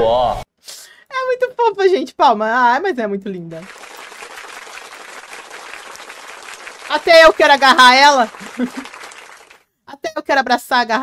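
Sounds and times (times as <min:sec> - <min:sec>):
crowd applause: 0:03.6 - 0:09.6.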